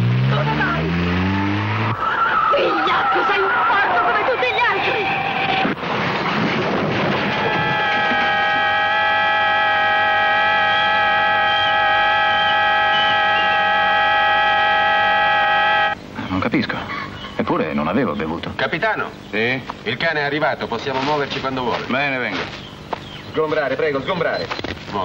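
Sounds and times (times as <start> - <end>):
car tyres squealing: 7.2 - 16.0
car horn blast: 7.3 - 16.0.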